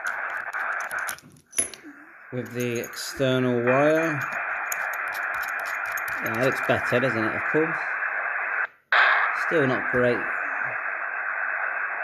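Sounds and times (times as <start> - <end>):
radio receiver hiss: 0.0 - 1.2, 1.8 - 12.0.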